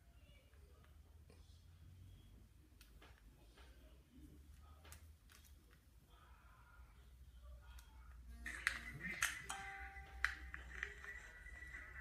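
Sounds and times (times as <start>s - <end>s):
held musical tones: 8.3s - 12.0s.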